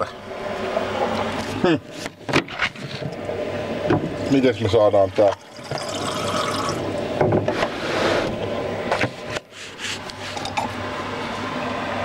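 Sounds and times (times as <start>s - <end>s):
water poured into glass: 5.3s - 6.9s.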